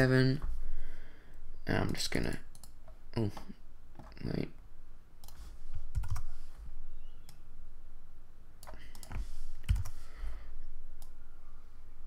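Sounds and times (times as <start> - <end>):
keyboard and mouse clicks: 1.8 - 4.2, 5.2 - 6.4, 8.6 - 10.0.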